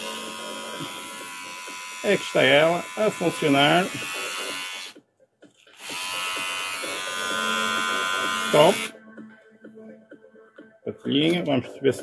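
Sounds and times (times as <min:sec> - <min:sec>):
electric shaver buzzing: 0:00.0 - 0:05.0, 0:05.7 - 0:09.0.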